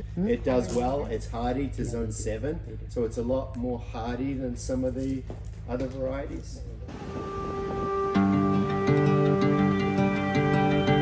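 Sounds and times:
plucked string music: 7.6s - 11.0s.

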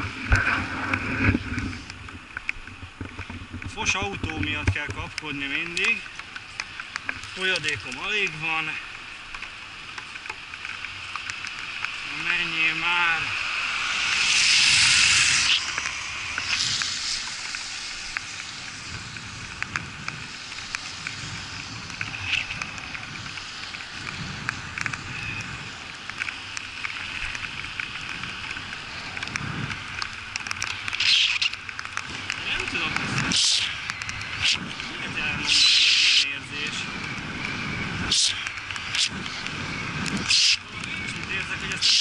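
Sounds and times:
wind buffeting microphone: 0.0s - 8.8s, 11.0s - 42.0s
bicycle tyres hissing on wet asphalt: 0.0s - 42.0s
car passing: 11.1s - 20.4s
gusts of rushing noise: 11.7s - 26.0s.

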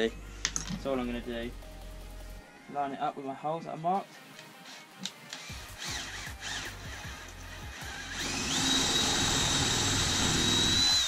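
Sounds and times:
drill whining into wood: 4.6s - 11.0s.

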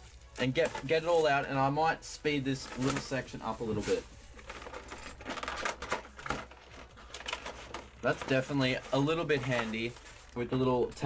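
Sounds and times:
cardboard and plastic rustling: 0.0s - 1.7s, 2.5s - 11.0s.

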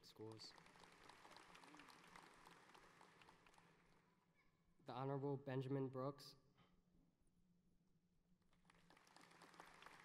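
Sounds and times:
audience applause: 0.0s - 4.0s, 8.7s - 10.0s.

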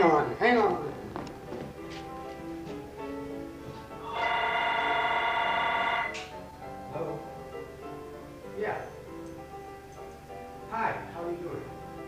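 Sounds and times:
telephone ringing: 4.0s - 6.2s.

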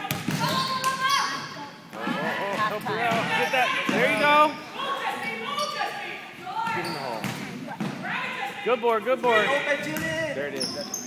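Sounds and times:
players and spectators calling out: 0.0s - 11.0s
sneakers squeaking on a court: 2.6s - 6.0s, 6.6s - 8.0s, 9.3s - 11.0s.

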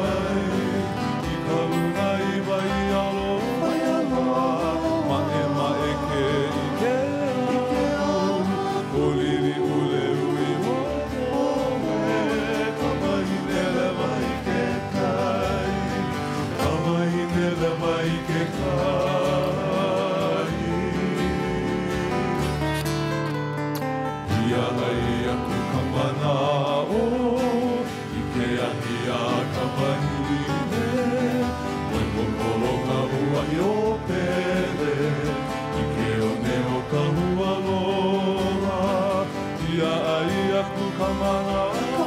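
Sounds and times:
men singing: 0.0s - 23.2s, 24.2s - 42.0s
string band playing: 0.0s - 42.0s.

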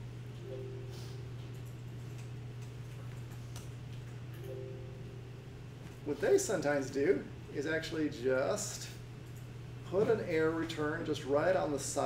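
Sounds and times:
low hum: 0.0s - 6.1s.

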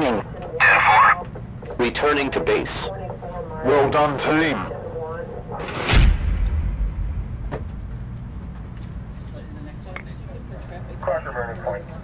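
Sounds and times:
heavy cinematic impact: 5.6s - 8.6s
deep low rumble: 5.6s - 9.1s.

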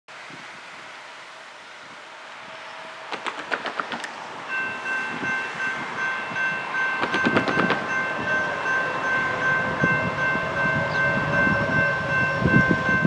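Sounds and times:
train rumble: 0.1s - 13.0s
distant train horn blasts: 4.6s - 13.0s.

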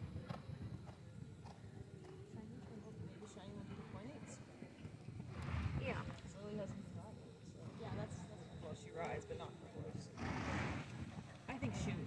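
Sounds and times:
people talking: 11.2s - 12.0s.

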